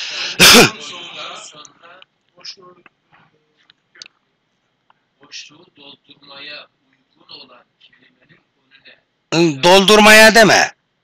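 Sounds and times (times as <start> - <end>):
person sneezing: 0.2 - 0.8.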